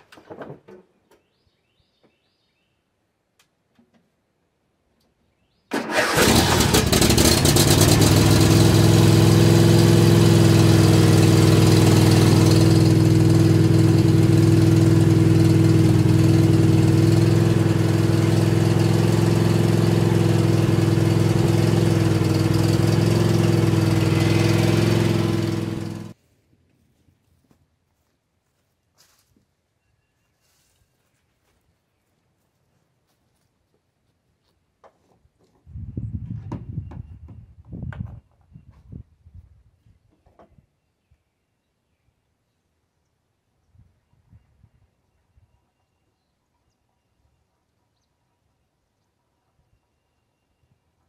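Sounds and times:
lawn tractor engine running: 5.7 - 26.2.

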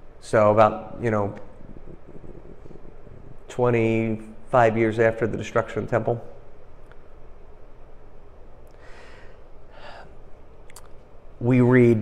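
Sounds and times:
low room hum: 0.0 - 12.0
man breathing in: 8.7 - 10.2.

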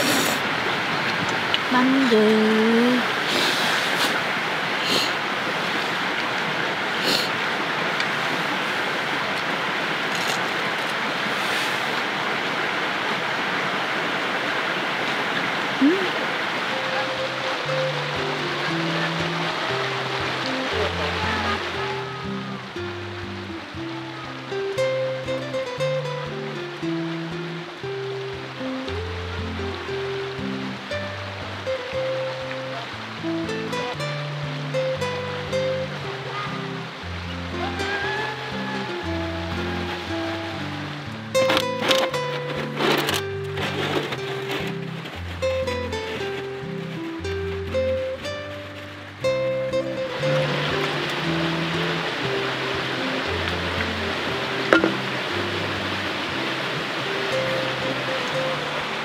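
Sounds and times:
mountain stream rushing: 0.0 - 59.0
soft slow background music: 15.9 - 59.0.

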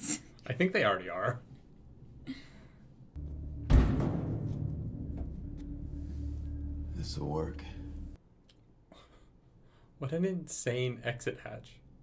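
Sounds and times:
heavy thud: 3.2 - 7.0
low music drone: 3.2 - 8.2.

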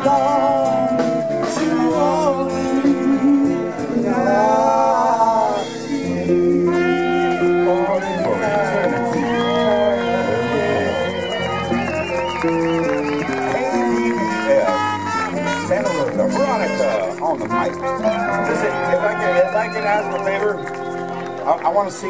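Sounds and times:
woman singing: 0.0 - 9.6
live latin band playing: 0.0 - 22.0
maracas shaking: 5.8 - 22.0.

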